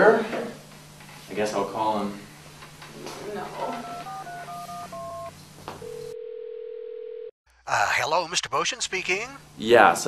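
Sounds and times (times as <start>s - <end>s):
steady call tone: 3.7s - 5.3s
touch-tone keypad beeps: 3.8s - 5.3s.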